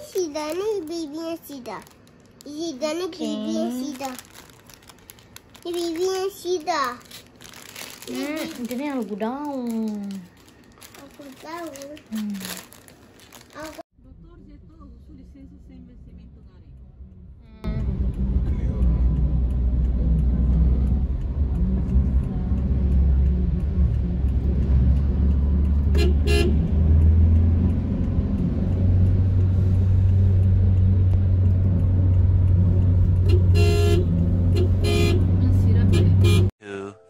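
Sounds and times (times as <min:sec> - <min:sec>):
car engine and tyre rumble: 0:14.1 - 0:36.5
car horn honks: 0:25.9 - 0:26.7, 0:33.2 - 0:36.5.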